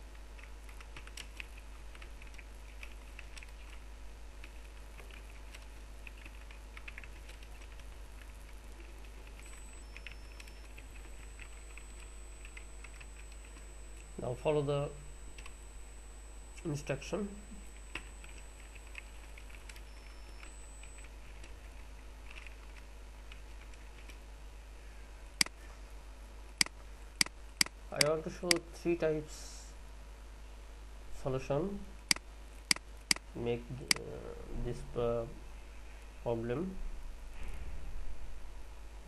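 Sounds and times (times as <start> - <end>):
steady low hum: 0.0 - 39.0
keyboard typing: 0.4 - 14.1, 15.3 - 15.6, 17.8 - 24.2.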